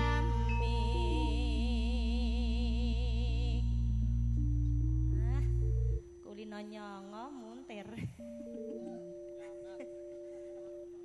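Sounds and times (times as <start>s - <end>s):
loud constant low bass: 0.0s - 6.1s
sustained instrumental notes: 0.0s - 6.2s, 8.2s - 11.0s.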